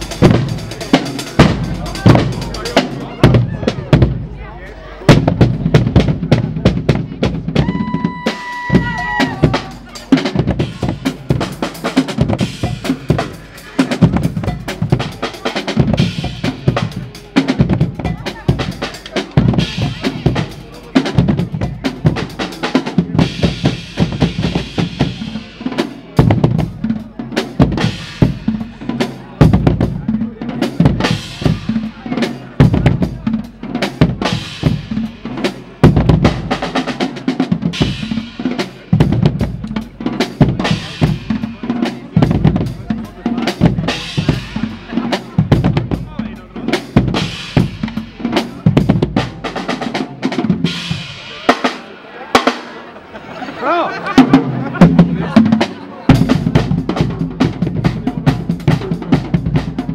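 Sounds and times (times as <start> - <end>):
carnival band playing: 0.0 - 59.9
drums beating with rolls: 0.0 - 59.9.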